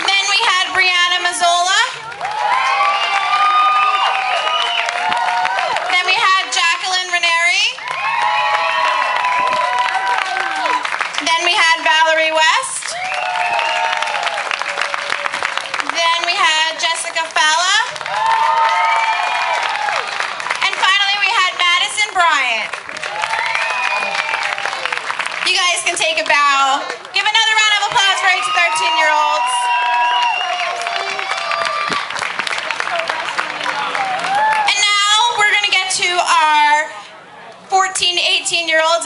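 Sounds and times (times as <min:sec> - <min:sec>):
audience applauding: 0:02.0 - 0:06.4, 0:07.8 - 0:11.8, 0:12.8 - 0:21.5, 0:22.6 - 0:34.7
high-pitched cheering whoops: 0:02.2 - 0:05.9, 0:07.8 - 0:10.8, 0:12.9 - 0:15.4, 0:18.0 - 0:20.2, 0:23.0 - 0:24.9, 0:27.9 - 0:32.1, 0:33.9 - 0:34.8.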